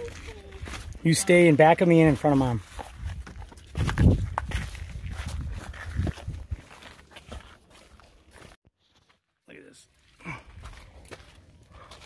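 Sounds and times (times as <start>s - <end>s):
footsteps on gravel trail: 0.0s - 12.0s.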